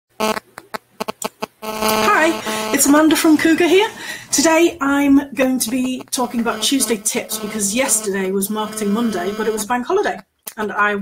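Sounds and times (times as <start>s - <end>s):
steady buzzing tone: 0.1s - 3.5s, 5.5s - 9.7s
short buzzy blips: 0.2s - 3.1s, 5.6s - 9.7s.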